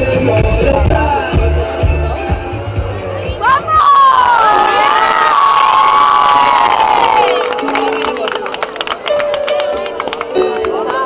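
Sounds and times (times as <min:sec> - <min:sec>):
children screaming and cheering: 0:03.4 - 0:08.2.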